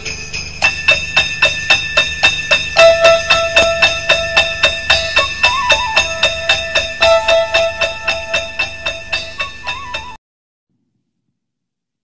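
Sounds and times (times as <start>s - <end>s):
held high tone: 0.0s - 10.2s
simple melody line: 0.0s - 10.2s
sleigh bells shaken: 0.0s - 10.2s.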